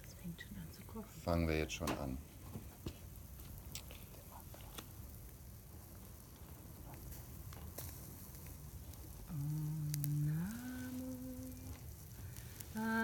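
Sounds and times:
resin crackling on charcoal: 0:00.0 - 0:13.0
person chanting slowly: 0:09.2 - 0:11.8, 0:12.7 - 0:13.0.

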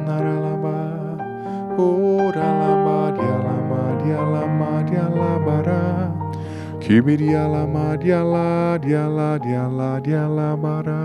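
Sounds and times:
man singing wordless notes: 0:00.0 - 0:11.0
soft background music: 0:00.0 - 0:11.0.

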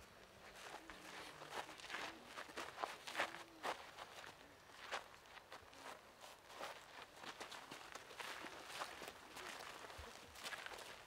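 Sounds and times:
feet shuffling on gritty dirt: 0:00.4 - 0:11.0.

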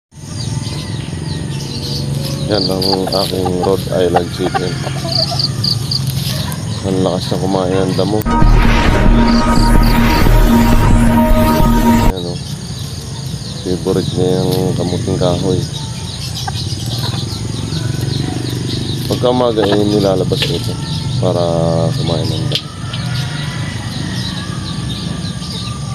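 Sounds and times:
small birds chirping: 0:00.1 - 0:08.2, 0:12.2 - 0:25.9
steady low hum: 0:08.2 - 0:12.2.

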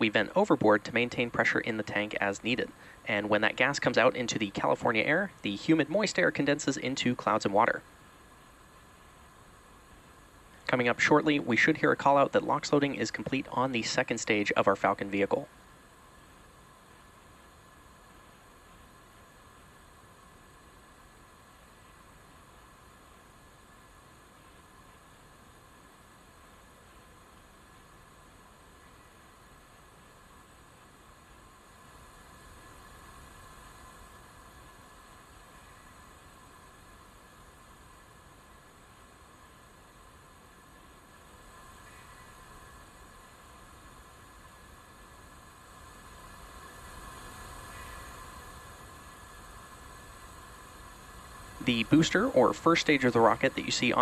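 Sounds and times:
faint steady hiss: 0:00.0 - 0:54.0
light hum: 0:00.0 - 0:54.0.

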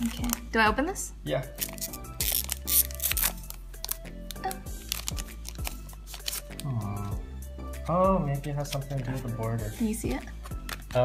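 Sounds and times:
foil wrapper tearing and crinkling: 0:00.0 - 0:00.5, 0:01.6 - 0:06.8
background music: 0:00.0 - 0:11.0.

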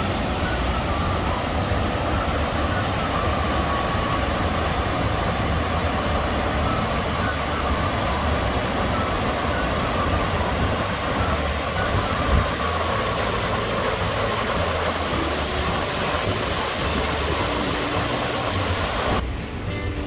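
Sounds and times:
background music: 0:00.0 - 0:20.0
waterfall rushing: 0:00.0 - 0:20.0.

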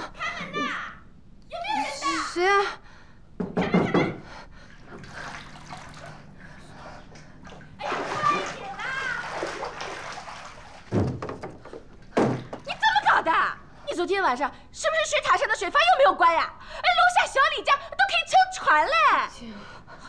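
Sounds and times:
water splashing from wading: 0:04.7 - 0:06.3, 0:07.2 - 0:11.2.

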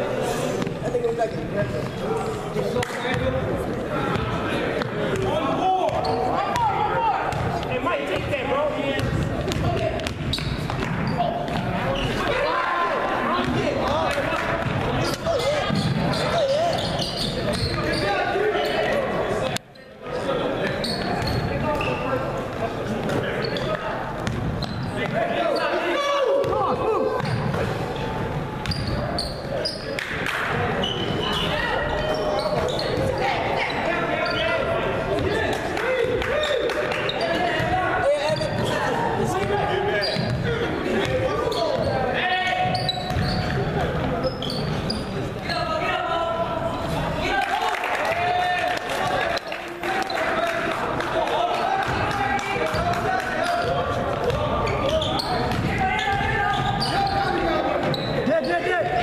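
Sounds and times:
basketball bouncing on hardwood floor: 0:09.0 - 0:11.7.

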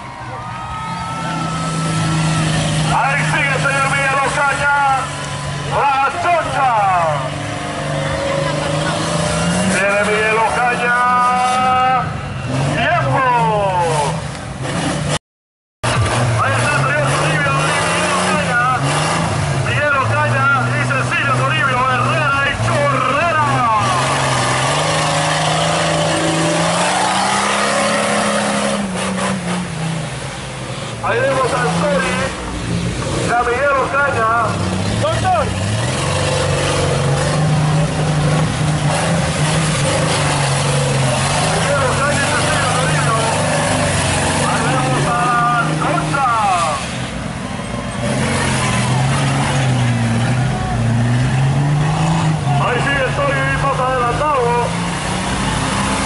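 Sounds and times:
crowd voices: 0:00.0 - 0:14.1, 0:31.0 - 0:56.0
truck engine revving hard: 0:00.8 - 0:15.2, 0:15.8 - 0:56.0.

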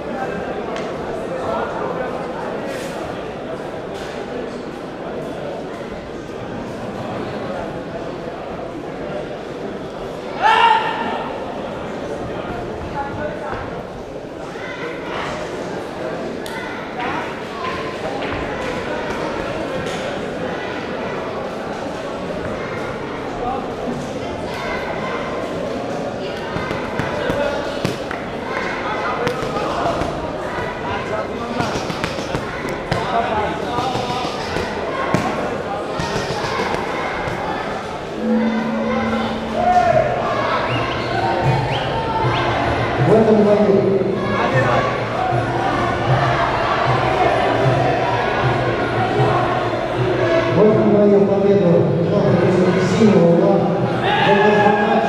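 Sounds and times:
voices calling out: 0:31.6 - 0:43.0.

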